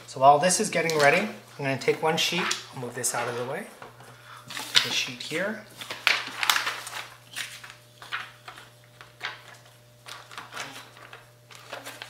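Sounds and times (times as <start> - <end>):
plastic pouch crinkling: 4.5 - 12.0.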